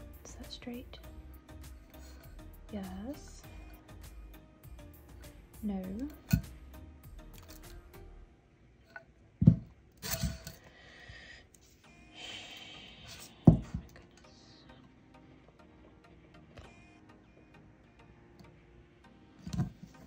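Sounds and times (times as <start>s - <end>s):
hard thumps on a table: 9.4s - 9.7s, 13.5s - 13.9s.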